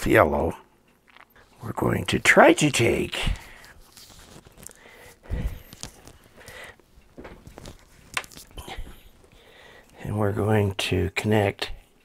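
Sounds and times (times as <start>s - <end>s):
wires handled clicking and rustling: 0.9s - 10.0s.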